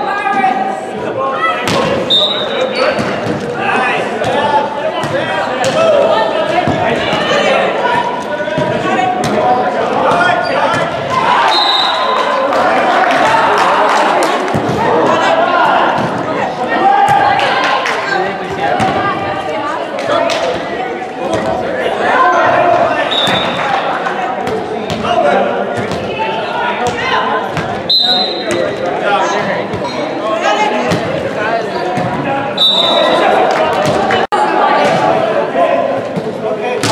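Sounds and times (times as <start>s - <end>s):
players calling out: 0.0s - 36.9s
volleyball slaps echoing: 1.6s - 3.6s, 4.2s - 7.5s, 8.1s - 12.2s, 14.2s - 16.4s, 22.8s - 26.2s, 33.4s - 35.2s, 36.1s - 36.9s.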